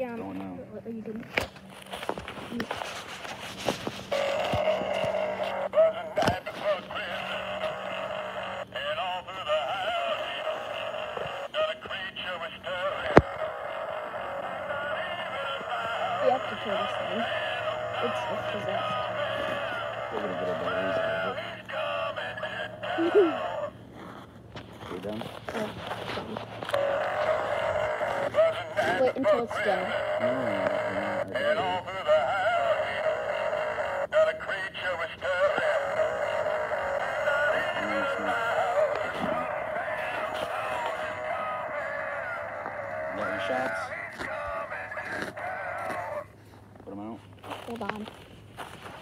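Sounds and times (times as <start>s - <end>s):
buzzy electronic tone: 3.4s - 8.8s, 26.4s - 31.7s
toy electronic singing voice: 4.1s - 23.8s, 26.7s - 46.3s.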